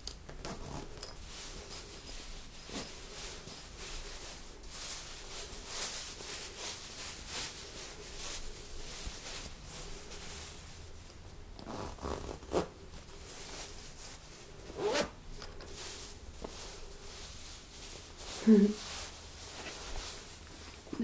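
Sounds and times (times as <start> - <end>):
cloth rustling: 0.3 - 21.0
zip rasping: 11.6 - 12.7, 14.7 - 15.2.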